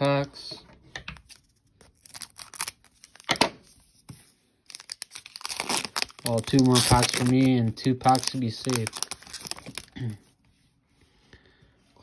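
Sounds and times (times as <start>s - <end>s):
foil wrapper crinkling: 1.4s - 3.3s, 4.6s - 10.1s
foil tearing: 4.7s - 9.9s.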